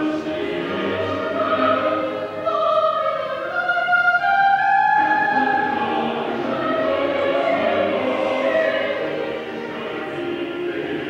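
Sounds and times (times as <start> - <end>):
choir singing held notes: 0.0 - 11.0.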